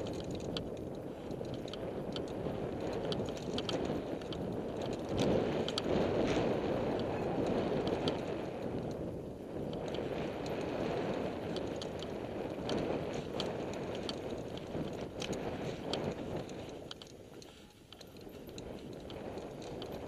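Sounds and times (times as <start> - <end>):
bike clicks and rattles: 0.0 - 20.0
bike tyre noise on dirt: 0.0 - 20.0
wind rush on microphone: 0.0 - 20.0.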